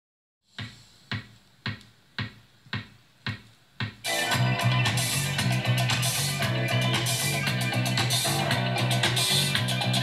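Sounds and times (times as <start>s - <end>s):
music beat from car radio: 0.5s - 10.0s.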